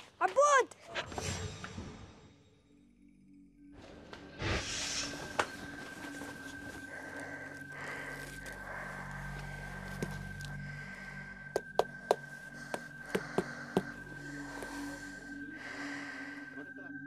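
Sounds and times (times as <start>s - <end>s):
heavy breathing through respirator: 4.7s - 16.8s.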